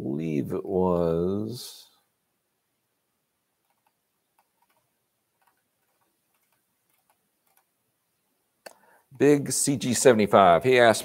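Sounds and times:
computer clicks: 3.6 - 7.7.

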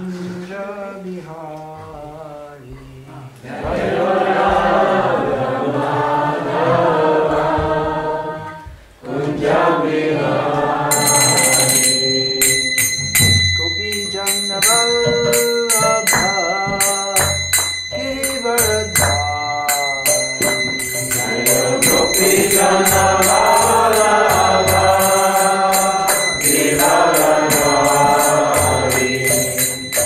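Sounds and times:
hand cymbals ringing: 10.9 - 30.0.

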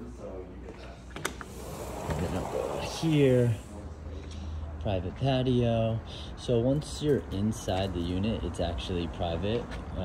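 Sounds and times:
sliding door rolling on track: 1.5 - 3.3.

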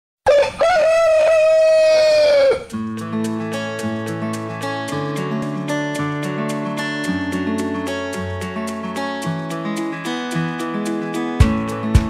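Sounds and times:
rooster crowing: 0.3 - 2.7.

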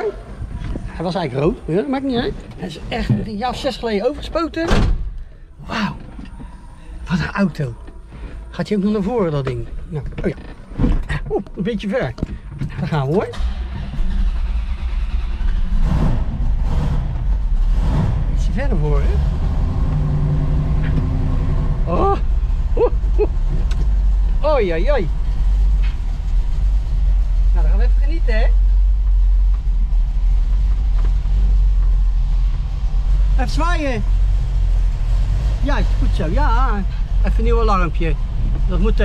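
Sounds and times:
car engine rumbling: 0.0 - 39.0.

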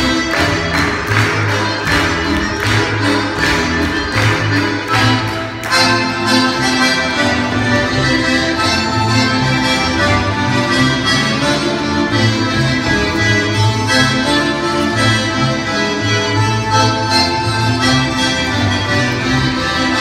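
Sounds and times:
instrumental folk dance music: 0.0 - 20.0.

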